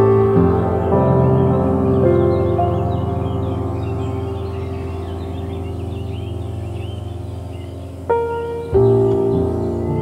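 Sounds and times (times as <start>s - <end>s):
bird chirps: 0.0s - 10.0s
sustained ambient chord: 0.0s - 10.0s.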